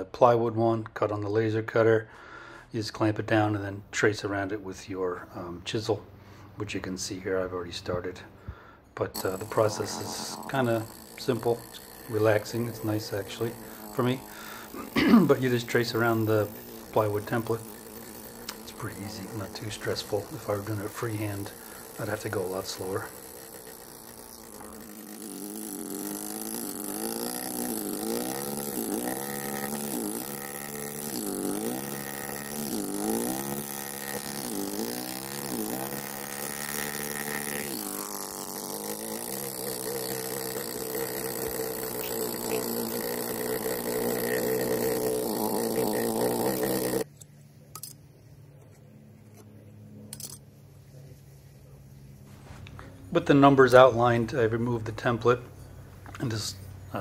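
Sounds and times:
pneumatic chisel cutting stone: 9.2s - 47.2s.

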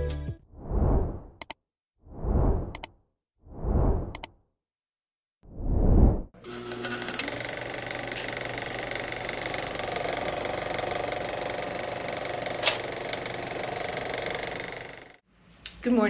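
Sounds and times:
sharp click: 1.4s - 1.6s
film projector clatter: 6.5s - 15.2s.

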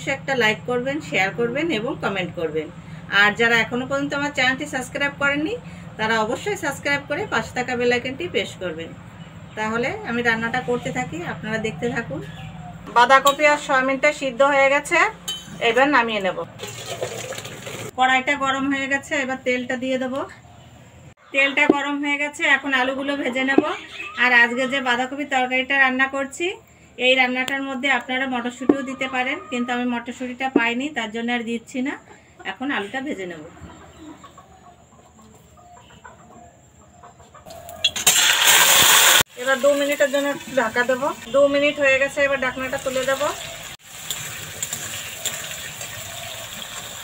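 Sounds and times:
chickens clucking: 22.7s - 25.3s, 28.4s - 30.7s, 31.9s - 38.0s
potatoes hissing in hot oil: 38.0s - 40.7s, 43.0s - 47.0s.

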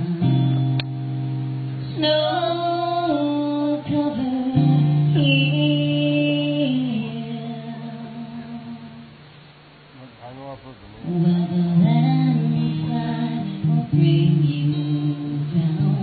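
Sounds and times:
woman singing: 0.0s - 0.8s, 1.9s - 9.2s, 11.0s - 16.0s
guitar: 0.0s - 16.0s.

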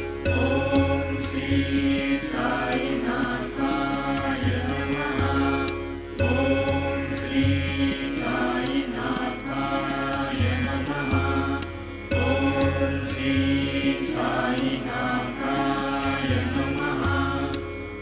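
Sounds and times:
steady drone: 0.0s - 18.0s
person chanting a mantra: 0.2s - 18.0s.

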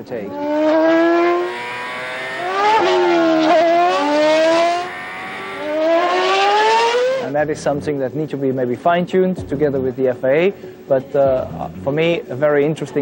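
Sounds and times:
racing car engine at high revs: 0.3s - 7.3s.

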